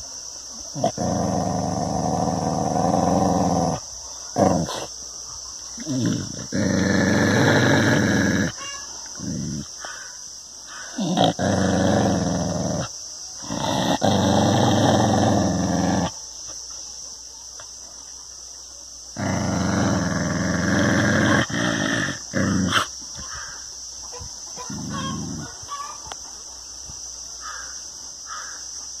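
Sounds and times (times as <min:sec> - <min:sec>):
dog growling: 0:00.7 - 0:04.9, 0:05.8 - 0:09.9, 0:10.8 - 0:16.2, 0:19.1 - 0:23.2, 0:24.6 - 0:25.6.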